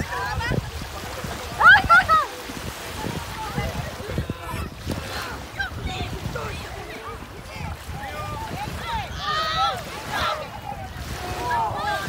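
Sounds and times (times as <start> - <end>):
small waves washing ashore: 0.0 - 12.0.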